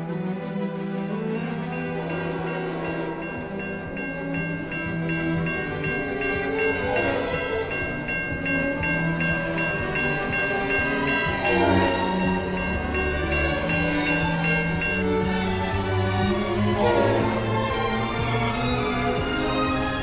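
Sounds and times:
orchestral music with strings: 0:00.0 - 0:20.0
railroad crossing warning bell: 0:01.0 - 0:20.0.

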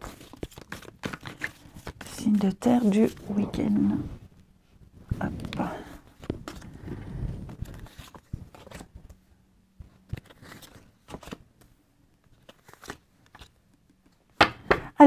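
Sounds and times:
cards rustling and sliding: 0:00.0 - 0:04.0, 0:05.3 - 0:09.2, 0:09.8 - 0:14.0.

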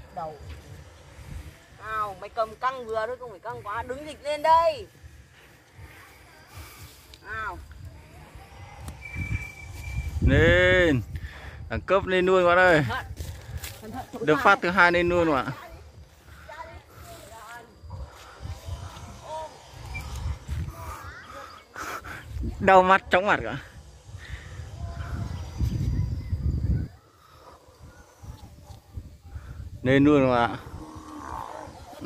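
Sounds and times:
wind rumble on microphone: 0:00.4 - 0:02.4, 0:06.6 - 0:32.0.

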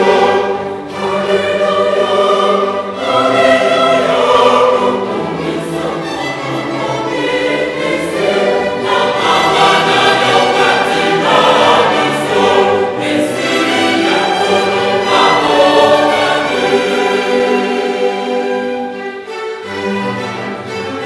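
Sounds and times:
choir singing sustained chords: 0:00.0 - 0:20.8
orchestral accompaniment: 0:00.0 - 0:21.0.

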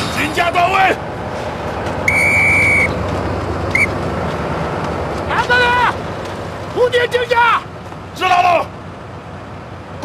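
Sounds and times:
pea whistle blasts: 0:02.0 - 0:03.0, 0:03.7 - 0:03.9.

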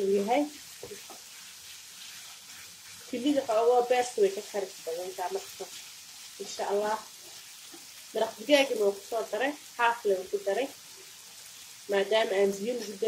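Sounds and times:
woman talking: 0:00.0 - 0:00.6, 0:03.1 - 0:05.7, 0:06.4 - 0:07.0, 0:08.2 - 0:10.7, 0:11.9 - 0:13.0
meat and onions sizzling in pan: 0:00.0 - 0:13.0
spatula stirring in pan: 0:00.0 - 0:13.0.

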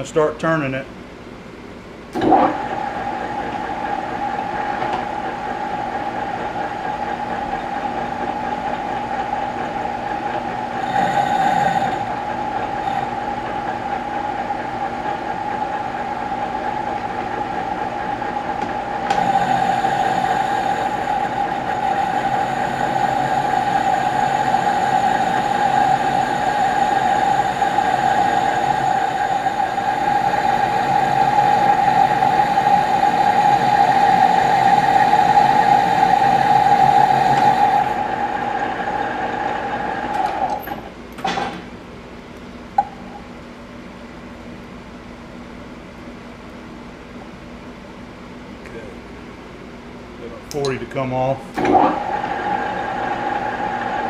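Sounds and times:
lathe running with steady whine: 0:02.2 - 0:41.0, 0:51.1 - 0:54.0.

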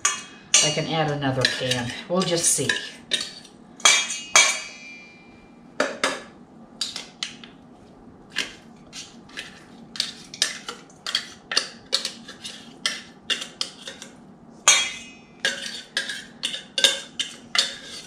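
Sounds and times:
metal bowl ringing: 0:00.0 - 0:02.8, 0:03.8 - 0:05.6, 0:14.7 - 0:15.5
fork scraping and tapping tin: 0:14.7 - 0:18.0.

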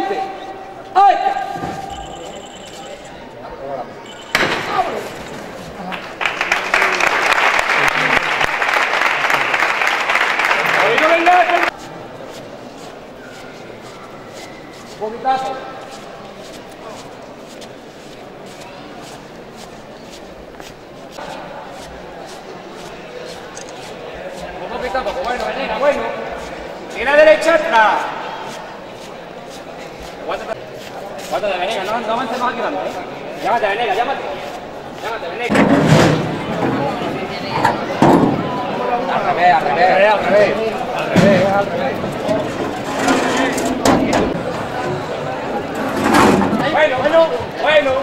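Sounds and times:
group of people talking: 0:00.0 - 0:48.0.

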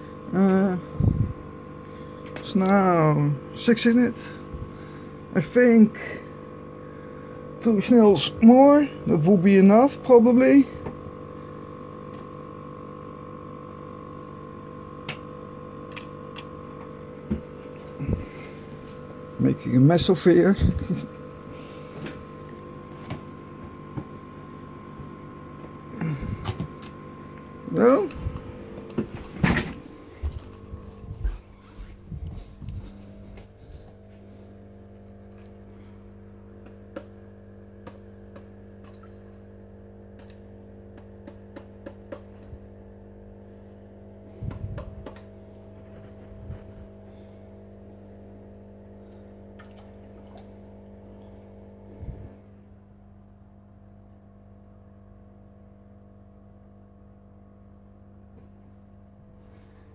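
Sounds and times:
low electrical hum: 0:00.0 - 0:59.9.

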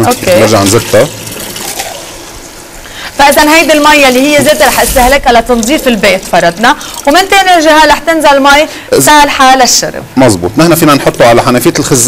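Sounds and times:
water running into plastic cup: 0:00.0 - 0:02.2.

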